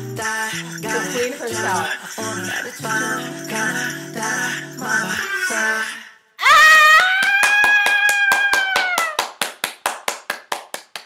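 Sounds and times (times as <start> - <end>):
woman squealing: 5.2 - 9.2
woman clapping hands quickly: 7.0 - 11.0.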